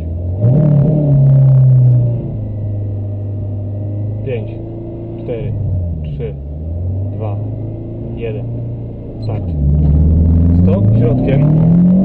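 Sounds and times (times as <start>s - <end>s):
rally car engine revving: 0.0s - 12.0s.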